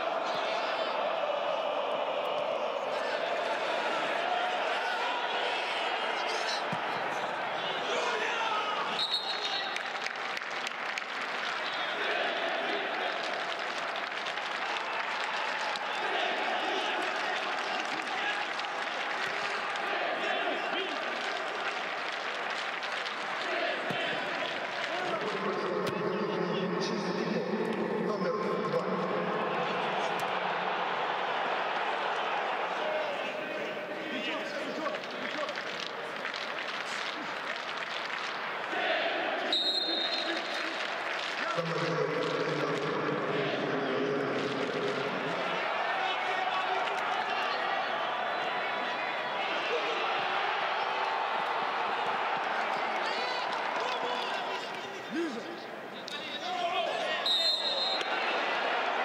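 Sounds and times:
players shouting and calling: 0.0 - 59.0
crowd murmur: 23.4 - 37.6, 38.4 - 50.4.

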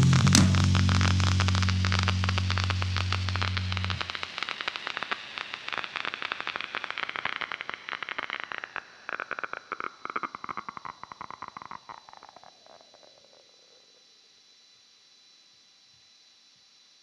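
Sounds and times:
band holding final chord: 0.0 - 4.1
cymbal crashes: 0.0 - 4.1
crackling hiss: 0.0 - 14.4.

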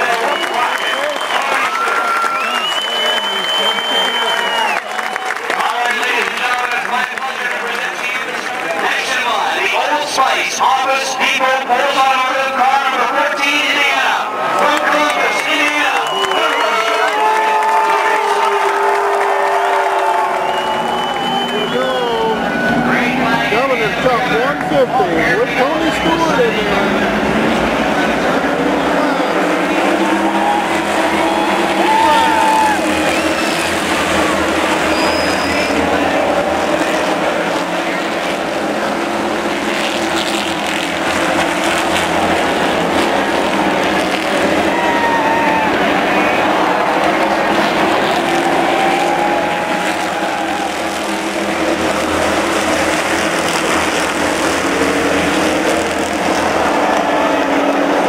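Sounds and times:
race car engines droning: 0.0 - 58.0
spectators' voices: 0.0 - 58.0.

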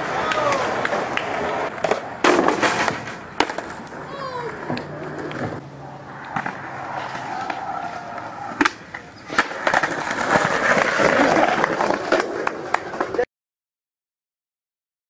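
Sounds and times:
skateboard clacking on ground: 0.0 - 13.3
skateboard wheels rolling on concrete: 0.0 - 13.3.

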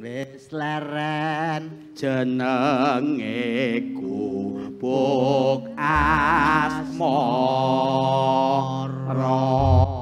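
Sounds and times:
man singing with heavy vibrato: 0.0 - 10.0
deep low stroke: 9.6 - 10.0.

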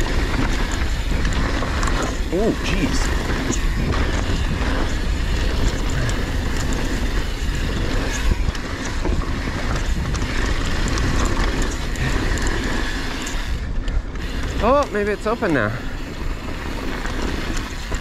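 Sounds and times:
bike clicking and rattling: 0.0 - 18.0
bike tyres rolling on gravel: 0.0 - 18.0
wind on microphone: 0.0 - 18.0.

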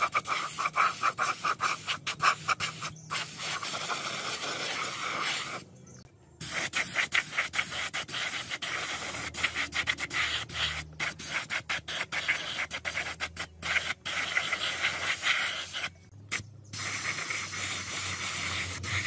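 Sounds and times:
paint spray gun hissing: 0.0 - 5.6, 6.4 - 19.0.

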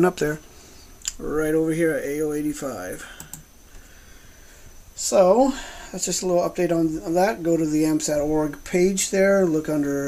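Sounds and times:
computer clicks: 3.1 - 3.5.

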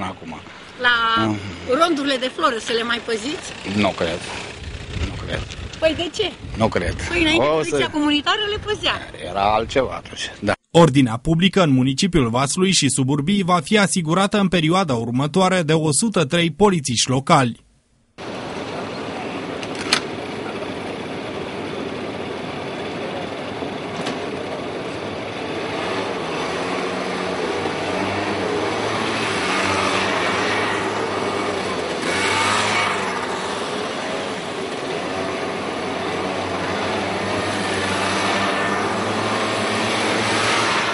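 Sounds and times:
motor scooters passing: 0.0 - 9.5, 18.2 - 40.9.

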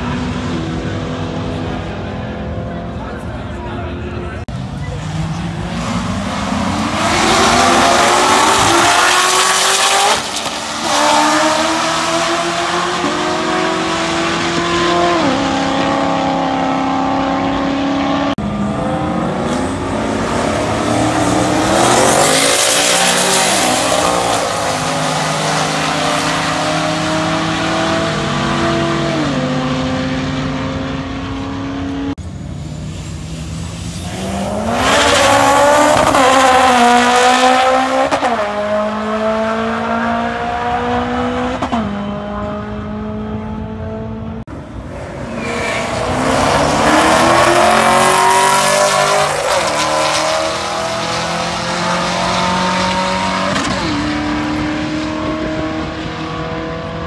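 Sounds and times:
racing cars at full throttle: 0.0 - 57.0.

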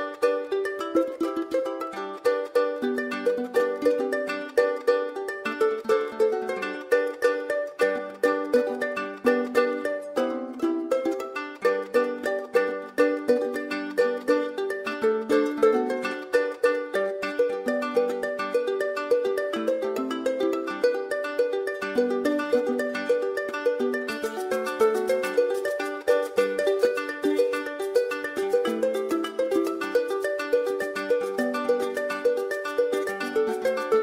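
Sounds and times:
plucked string instrument melody: 0.0 - 34.0.

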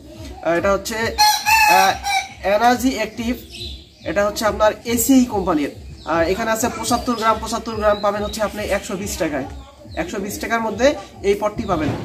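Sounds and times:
rooster crowing: 1.2 - 2.3.

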